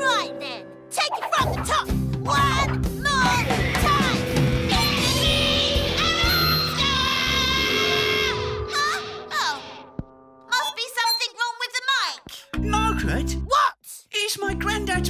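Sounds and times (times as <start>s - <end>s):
rock band playing: 1.9s - 7.5s.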